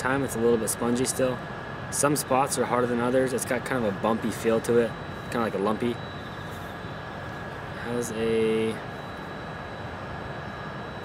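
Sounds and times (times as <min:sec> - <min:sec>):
continuous hiss: 0:00.0 - 0:10.3.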